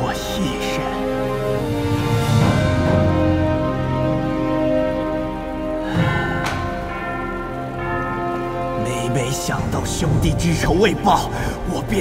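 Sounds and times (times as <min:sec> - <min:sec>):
music with bell tones: 0:05.8 - 0:12.0.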